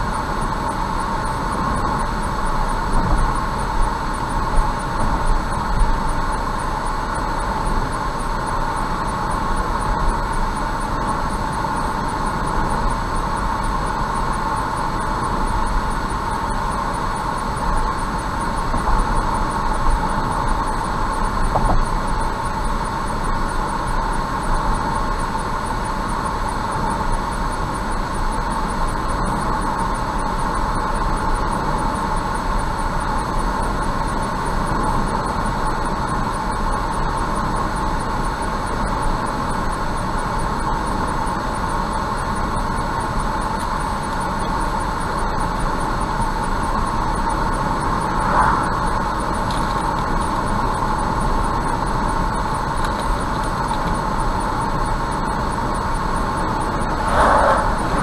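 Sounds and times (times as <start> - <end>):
road and tyre noise: 46.7 - 58.0
car engine hum: 56.4 - 58.0
brief louder sound: 57.0 - 58.0.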